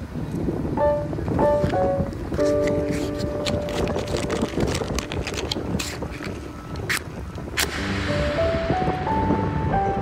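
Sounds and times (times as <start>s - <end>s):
steady low rumble: 0.0s - 10.0s
wind on microphone: 0.0s - 10.0s
held music chord: 7.7s - 10.0s.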